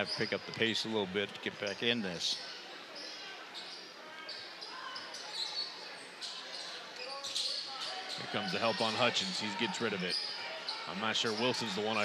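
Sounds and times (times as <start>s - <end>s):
murmur of voices: 0.0s - 12.0s
sneakers squeaking: 3.0s - 8.9s.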